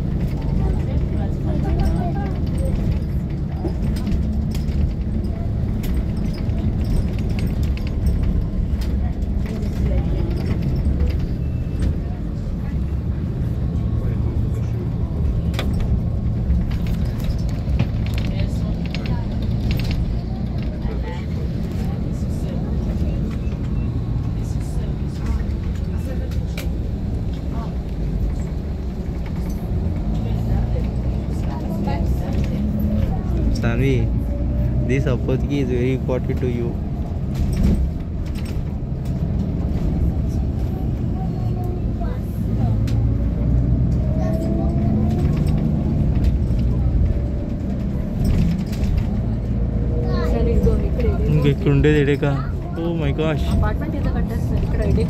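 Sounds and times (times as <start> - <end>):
vehicle engine and road rumble: 0.0 - 55.0
light clicks and rattles: 0.1 - 13.5, 14.8 - 55.0.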